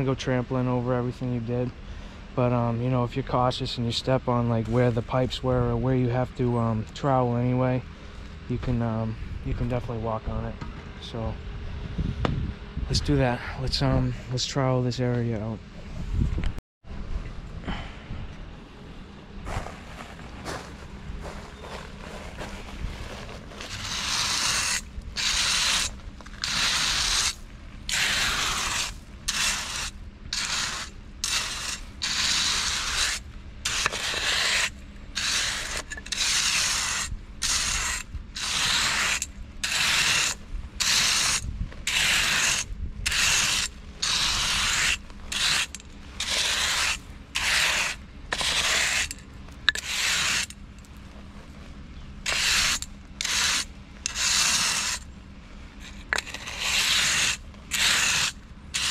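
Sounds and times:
trowel scraping crushed stone: 0:21.2 - 0:51.0, 0:52.0 - 0:55.1, 0:55.8 - 0:58.9.

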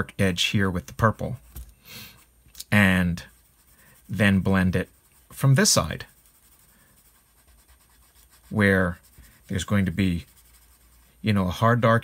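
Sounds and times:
colored pencil strokes on paper: 0:02.7 - 0:12.0.

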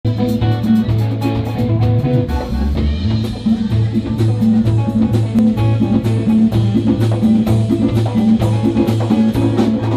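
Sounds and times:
bass line: 0:00.0 - 0:09.9
congas: 0:00.0 - 0:09.9
live band playing: 0:00.0 - 0:09.9.

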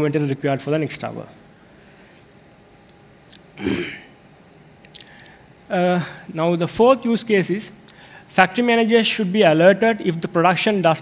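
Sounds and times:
man clearing his throat: 0:03.6 - 0:04.2.

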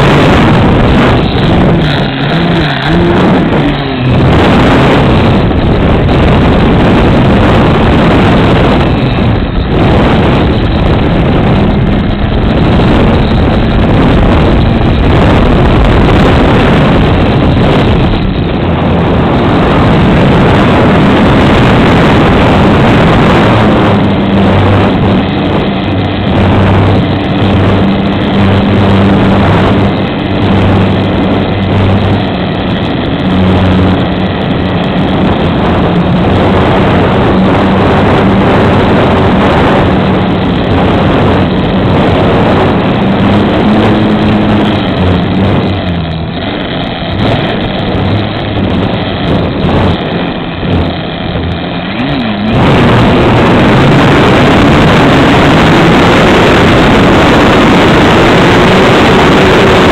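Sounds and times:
wind rushing on microphone: 0:00.0 - 0:59.9.

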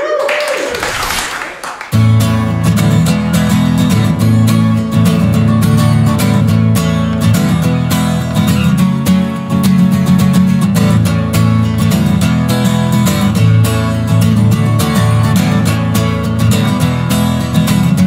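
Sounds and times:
acoustic guitar strumming: 0:01.9 - 0:18.0.

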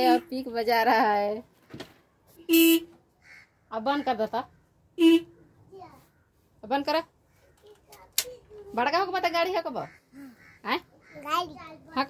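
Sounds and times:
motorcycle horn beep: 0:02.5 - 0:02.9.

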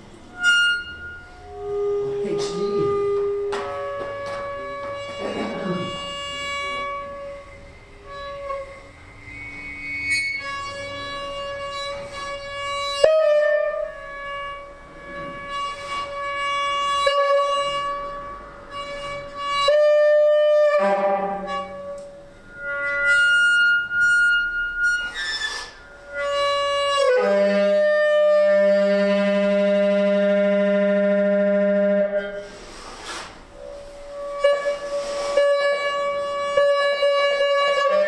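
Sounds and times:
saxophone long note: 0:01.1 - 0:08.8
short hiss: 0:32.4 - 0:33.4.

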